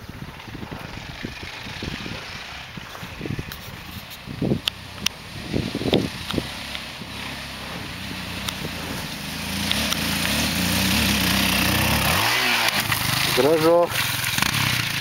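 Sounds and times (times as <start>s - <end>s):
quad bike engine: 0.0s - 15.0s.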